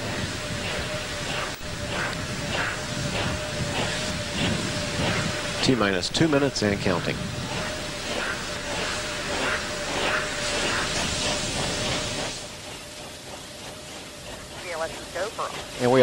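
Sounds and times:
steady hiss: 0.0 - 16.0.

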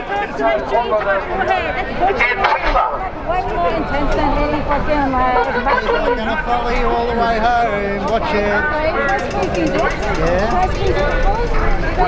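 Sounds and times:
crowd babble: 0.0 - 12.0
people arguing: 0.0 - 12.0.

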